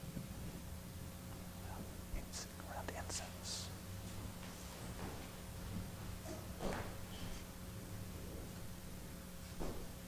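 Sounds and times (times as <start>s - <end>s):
low steady hum: 0.0s - 10.0s
faint whispering: 1.6s - 3.8s.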